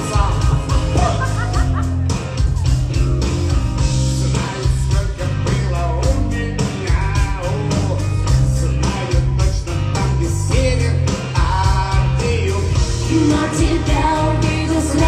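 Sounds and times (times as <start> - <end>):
man singing into microphone: 0.0 - 1.3, 4.1 - 13.9
loud live rock music: 0.0 - 15.0.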